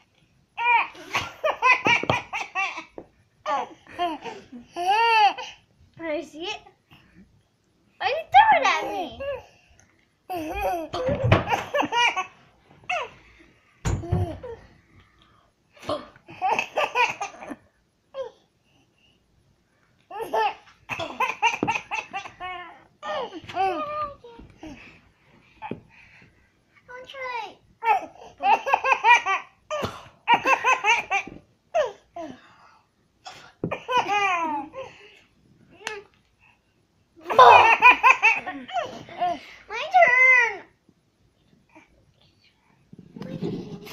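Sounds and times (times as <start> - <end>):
baby laughing: 37.3 - 38.9.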